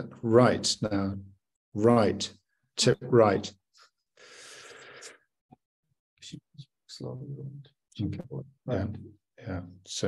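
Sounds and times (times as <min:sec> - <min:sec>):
breath on microphone: 0:04.2 - 0:05.3.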